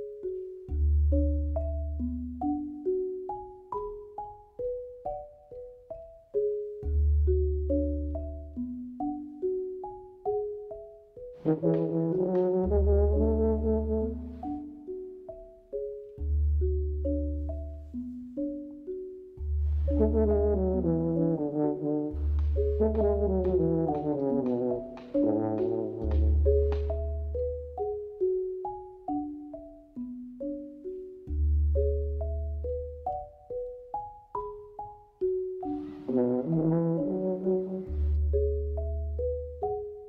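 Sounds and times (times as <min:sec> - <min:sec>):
marimba played with mallets: 0:00.0 - 0:40.0
brass-like held chords: 0:11.4 - 0:14.6, 0:19.7 - 0:27.2, 0:35.8 - 0:38.3
low bass notes: 0:11.5 - 0:14.5, 0:19.4 - 0:27.8.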